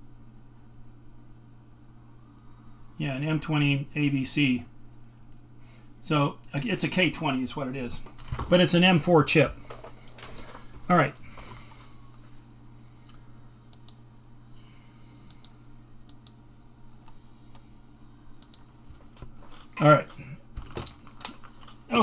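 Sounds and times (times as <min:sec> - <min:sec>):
low electrical hum: 0:00.0 - 0:22.0.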